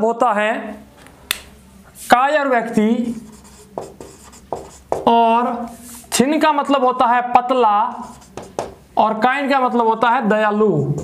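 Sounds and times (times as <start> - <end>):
marker pen writing on whiteboard: 2.0 - 6.2, 7.7 - 8.8.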